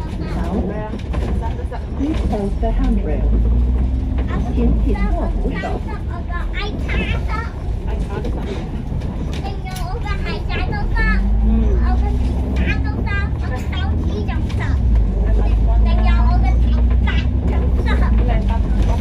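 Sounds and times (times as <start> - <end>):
bus engine drone: 0.0 - 19.0
indistinct passenger voices: 0.0 - 19.0
rising engine whine: 2.2 - 8.2, 10.1 - 19.0.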